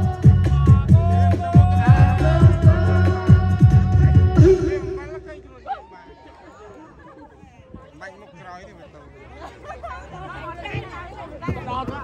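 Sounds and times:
people chatting: 4.4 - 12.0.

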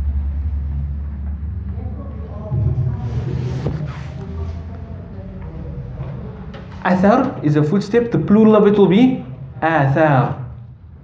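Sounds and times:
low rumble: 0.0 - 5.3
faint voices murmuring: 0.9 - 9.6.

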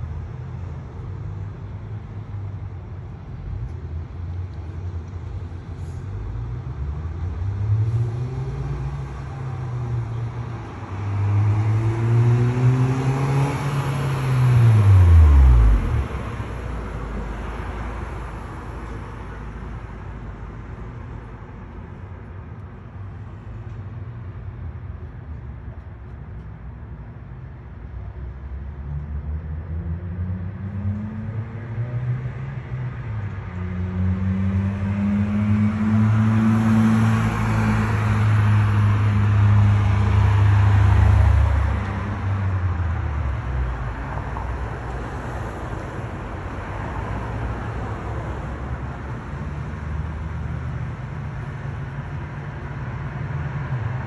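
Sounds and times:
cars driving past: 0.0 - 25.8, 27.3 - 54.0.

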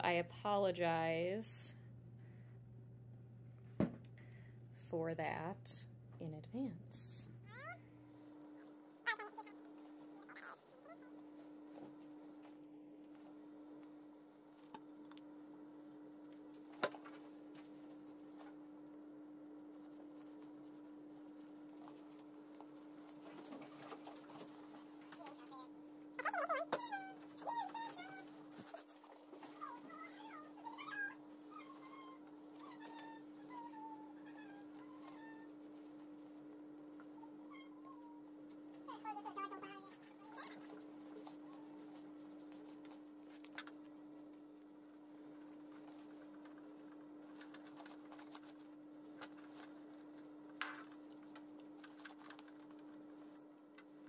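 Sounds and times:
faint steady hum: 0.0 - 54.0
dog whining: 7.5 - 7.9, 8.6 - 9.6, 10.2 - 11.2, 26.2 - 28.3, 29.4 - 35.5, 37.1 - 38.2.

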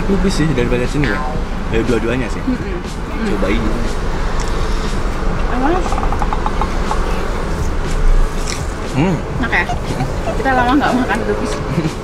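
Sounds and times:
low rumble of car cabin: 0.0 - 12.0.

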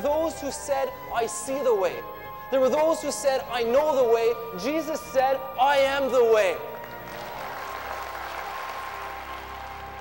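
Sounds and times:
music holding steady notes: 0.0 - 10.0
crowd applauding: 6.7 - 10.0.

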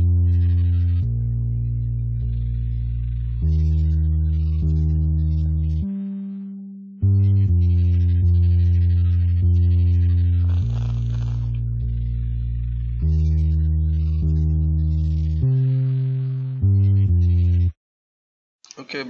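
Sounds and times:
electric bass playing held notes: 0.0 - 17.7
scratchy string noise: 10.4 - 11.6.

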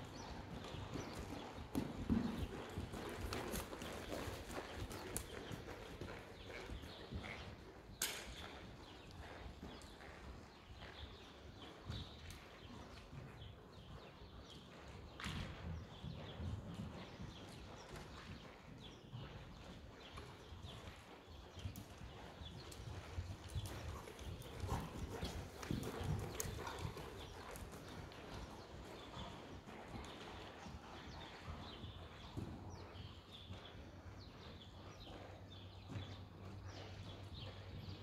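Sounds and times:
horse hoofbeats on soft ground: 0.0 - 13.8, 14.4 - 38.0.

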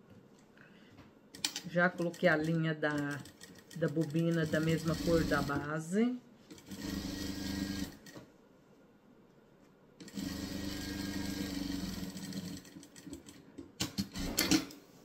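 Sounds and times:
sewing machine stitching: 1.4 - 5.7, 6.5 - 8.2, 10.0 - 14.7.

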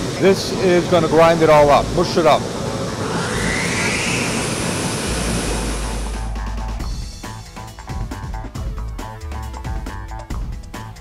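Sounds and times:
grinder machine running: 1.0 - 7.2
background music with plucked guitar: 6.2 - 11.0.

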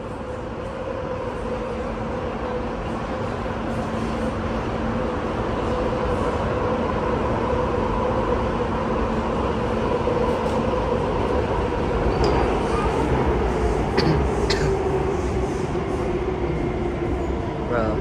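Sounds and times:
metro train interior rumble: 0.0 - 18.0.

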